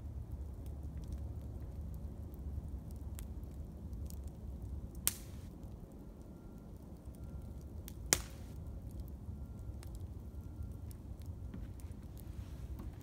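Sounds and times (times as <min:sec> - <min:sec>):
campfire crackling: 0:00.0 - 0:13.0
sharp pops from burning wood: 0:00.4 - 0:05.9, 0:06.7 - 0:10.1.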